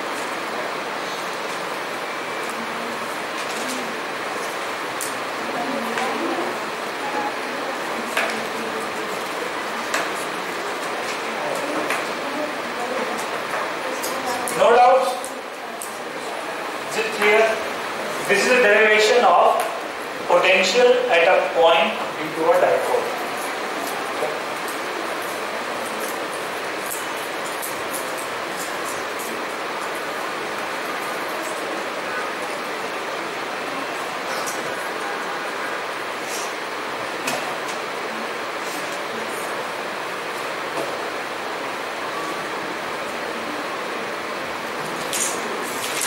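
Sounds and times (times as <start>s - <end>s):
room noise hiss: 0.0s - 46.0s.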